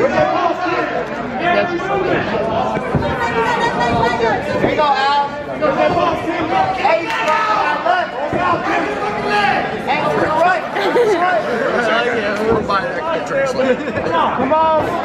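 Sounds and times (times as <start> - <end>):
crowd talking and calling out: 0.0 - 15.0.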